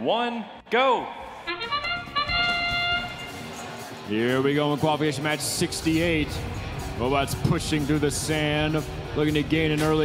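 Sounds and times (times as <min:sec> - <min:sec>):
short trumpet fanfare: 0:01.5 - 0:03.5.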